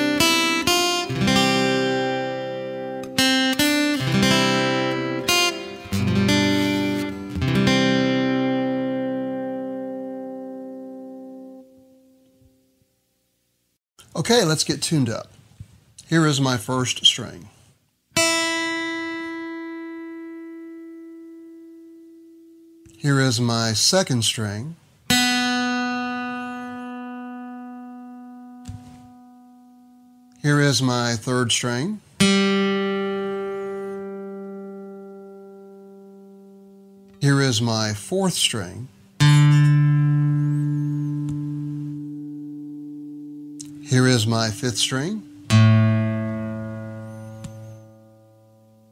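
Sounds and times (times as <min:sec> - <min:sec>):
guitar string plucked and ringing: 0:25.1 - 0:30.4, 0:39.2 - 0:48.9.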